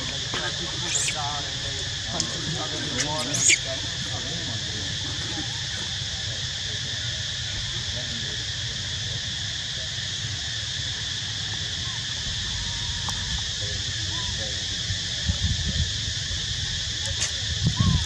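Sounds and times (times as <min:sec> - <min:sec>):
faint distant voices: 0:00.0 - 0:18.0
insect chorus buzzing: 0:00.0 - 0:18.0.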